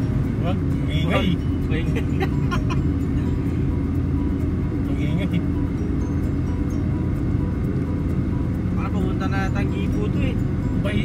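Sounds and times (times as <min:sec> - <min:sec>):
car road and engine noise: 0:00.0 - 0:11.0.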